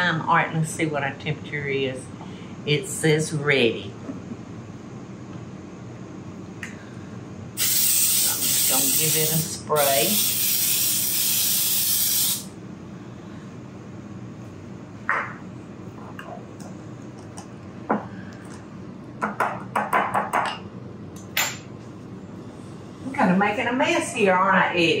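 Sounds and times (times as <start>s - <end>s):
aerosol spray hissing: 7.6s - 12.5s.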